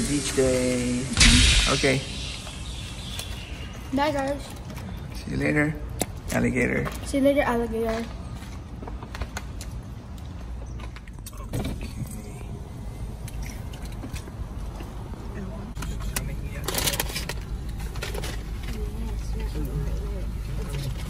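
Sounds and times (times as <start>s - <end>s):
rustling and clattering of food: 15.9s - 19.7s.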